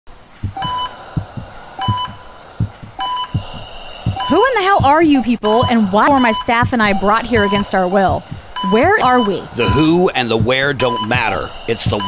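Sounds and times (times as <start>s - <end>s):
heartbeat thumps: 0.1s - 12.0s
heart monitor beeping: 0.4s - 12.0s.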